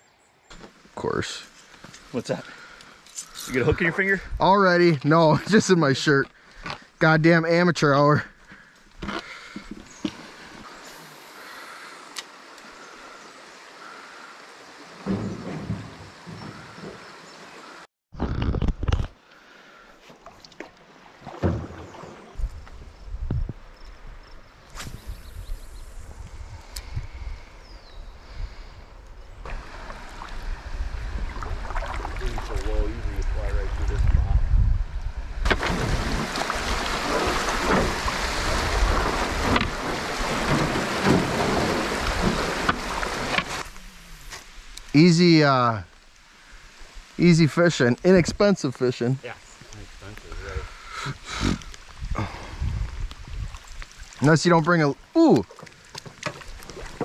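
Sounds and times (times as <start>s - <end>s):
knocks and rustles: 15.0s - 17.1s
water rushing over rapids: 35.5s - 44.2s.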